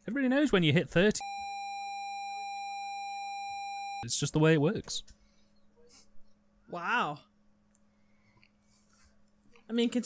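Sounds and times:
censor bleep tone: 1.2 - 4.0.

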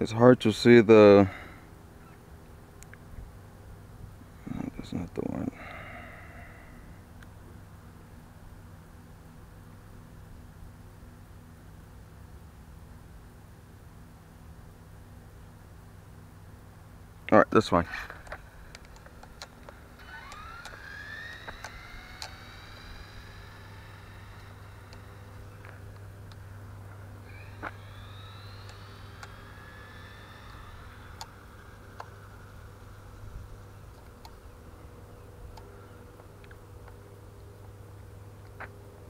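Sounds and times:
electric motor whining: 18.0 - 36.9.

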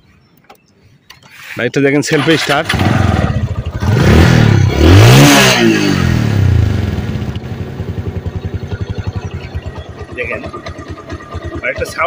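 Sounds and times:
motorcycle engine revving and idling: 2.1 - 12.0.

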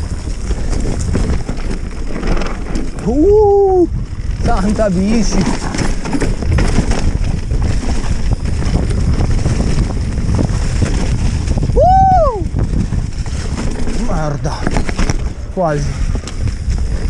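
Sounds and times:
bike rattling: 0.0 - 17.0
bike tyre rumble: 0.0 - 17.0
wind on microphone: 0.0 - 17.0.

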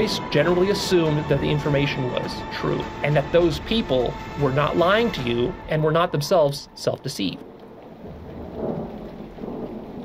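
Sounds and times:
rain hissing: 0.0 - 10.0
thunder rumble: 0.0 - 10.0.

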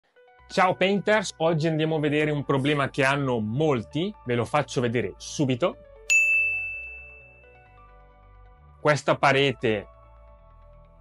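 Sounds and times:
bell-like ding: 6.1 - 7.8.

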